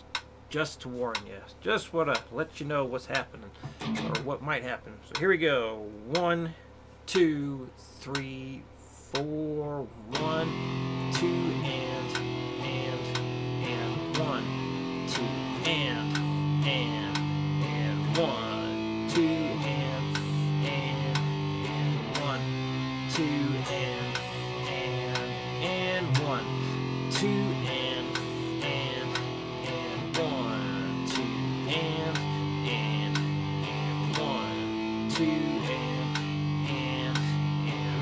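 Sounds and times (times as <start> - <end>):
electric guitar strumming power chords: 3.6 - 4.6, 10.1 - 38.0.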